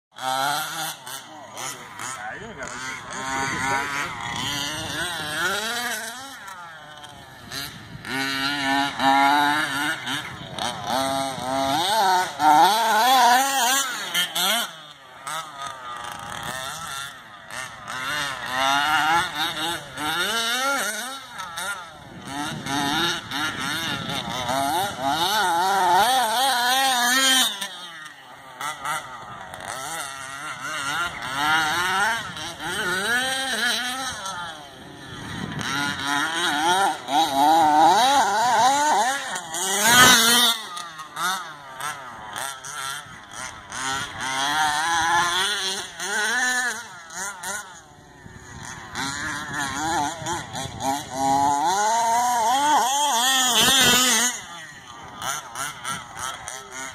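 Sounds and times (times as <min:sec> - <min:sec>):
two-stroke engine revving: 0:00.1 - 0:56.9.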